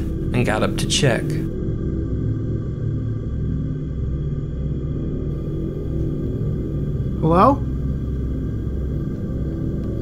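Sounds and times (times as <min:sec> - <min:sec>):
dark ambient drone music: 0:00.0 - 0:10.0.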